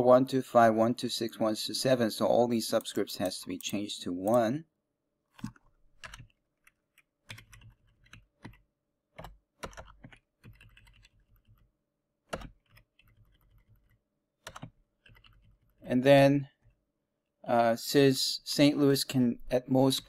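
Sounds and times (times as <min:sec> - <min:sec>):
faint computer keyboard typing: 0:05.3 - 0:08.6, 0:09.2 - 0:11.7, 0:12.3 - 0:15.8.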